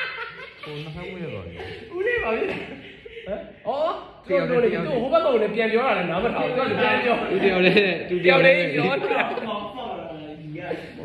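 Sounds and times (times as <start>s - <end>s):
men talking and chuckling: 0.0s - 3.8s, 6.2s - 9.9s.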